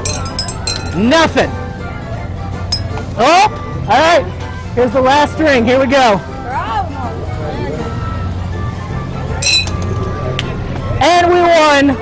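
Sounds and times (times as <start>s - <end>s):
plastic ring clinking off bottles: 0.0s - 1.1s, 2.7s - 3.0s, 9.4s - 10.0s
background music: 0.0s - 12.0s.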